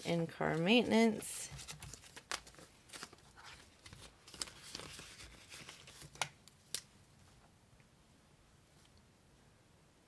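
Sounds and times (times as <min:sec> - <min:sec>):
banknotes rustling: 0:00.0 - 0:06.8.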